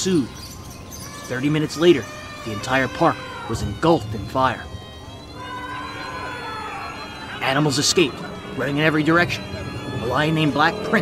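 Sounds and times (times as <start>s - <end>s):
siren wailing: 0.0s - 11.0s.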